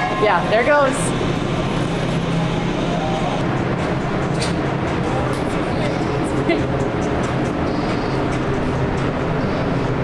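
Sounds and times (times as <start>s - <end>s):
oven burner and fan rushing: 0.0s - 10.0s.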